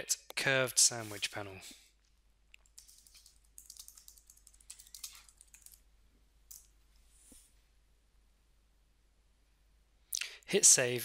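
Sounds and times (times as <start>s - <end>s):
keyboard typing: 2.6s - 5.8s.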